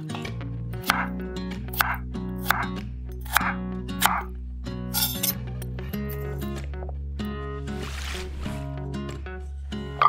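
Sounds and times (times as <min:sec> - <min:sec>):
background music: 0:00.0 - 0:10.0
knife chopping on wooden board: 0:00.8 - 0:01.1, 0:01.8 - 0:02.7, 0:03.3 - 0:04.3.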